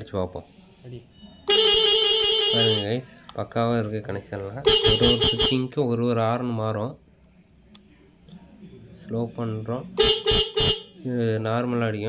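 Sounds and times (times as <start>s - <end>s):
electric horn honks: 1.5s - 2.9s, 4.7s - 5.6s, 10.0s - 10.9s
wavering horn tone: 1.5s - 2.9s.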